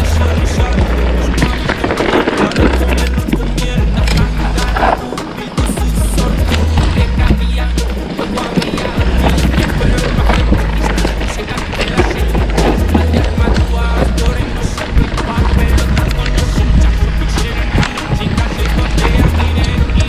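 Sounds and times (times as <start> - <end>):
background music with bass line: 0.0 - 20.0
bike rattling over rough ground: 0.0 - 20.0
bike tyre rumble on dirt: 0.0 - 20.0.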